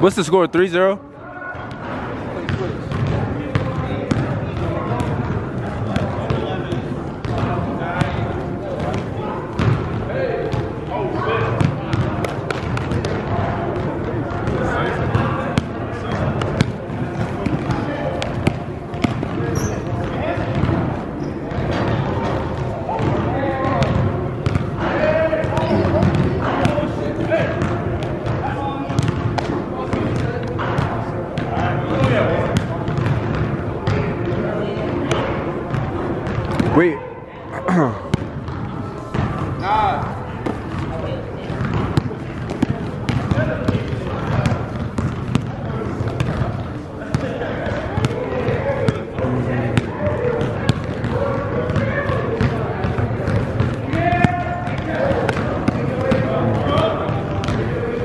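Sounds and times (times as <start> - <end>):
voices in a large hall: 0.0 - 58.0
basketball bouncing on gym floor: 1.6 - 10.7, 11.5 - 36.8, 38.1 - 58.0.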